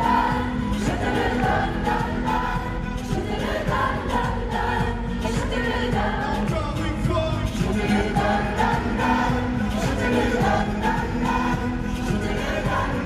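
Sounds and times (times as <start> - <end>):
pop duet singing with band: 0.0 - 13.0.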